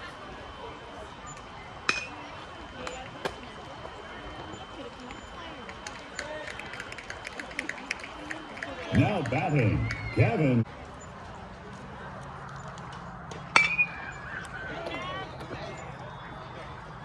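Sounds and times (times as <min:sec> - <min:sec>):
faint crowd chatter: 0:00.0 - 0:17.0
metal bat hitting ball: 0:13.5 - 0:14.0.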